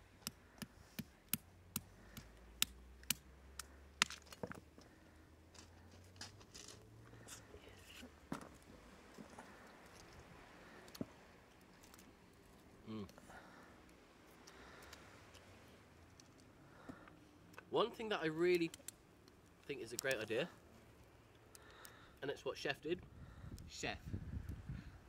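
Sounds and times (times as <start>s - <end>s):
shell cracking by hand: 0.2s - 5.0s, 18.6s - 20.2s, 21.0s - 22.0s.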